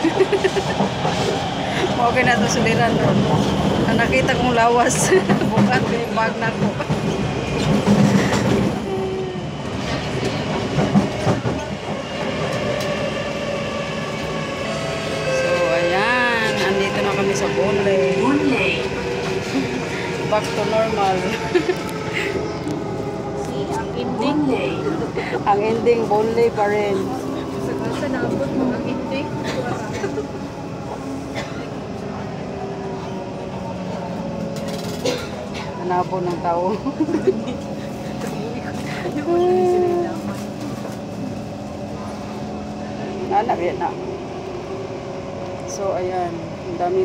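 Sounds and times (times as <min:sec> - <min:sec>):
passengers' voices: 0:00.0 - 0:47.0
train wheels running on rails: 0:00.0 - 0:47.0.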